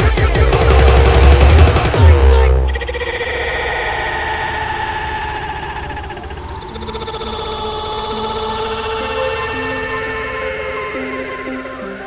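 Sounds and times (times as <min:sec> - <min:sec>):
held synthesizer chords: 0:00.0 - 0:12.0
low pulsing bass: 0:00.2 - 0:10.3.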